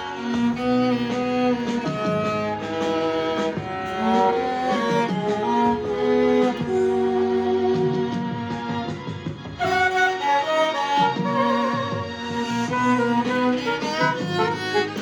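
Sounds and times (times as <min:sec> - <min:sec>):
violin slow melody: 0:00.0 - 0:15.0.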